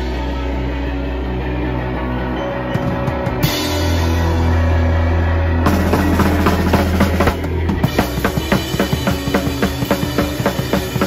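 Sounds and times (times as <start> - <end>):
punk band playing loud: 0.0 - 11.0
fast drum beat: 5.7 - 11.0.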